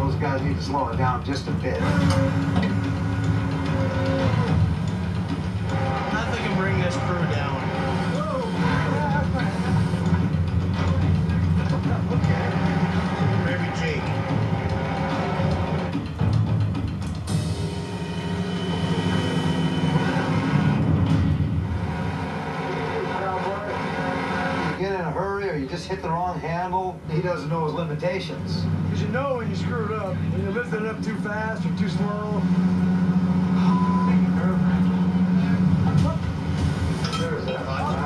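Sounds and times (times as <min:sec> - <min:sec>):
background music: 0:00.0 - 0:38.0
low machinery drone: 0:00.0 - 0:38.0.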